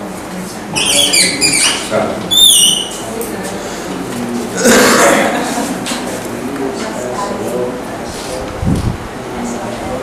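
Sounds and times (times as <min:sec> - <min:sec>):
man's rough throat sound: 0:04.6 - 0:05.3.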